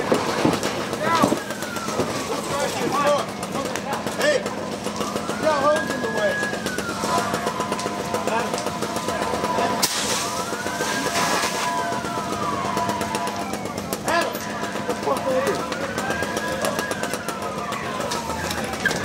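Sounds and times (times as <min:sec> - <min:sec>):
fire hose water spray: 0:00.0 - 0:14.4
emergency vehicle siren wailing: 0:00.0 - 0:19.0.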